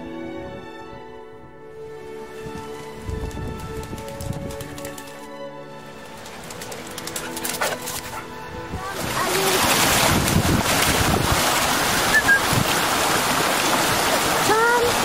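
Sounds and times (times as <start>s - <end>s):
music with long held notes: 0.0s - 10.9s
stream rushing: 1.8s - 15.0s
dog splashing through water: 6.0s - 8.3s, 8.9s - 15.0s.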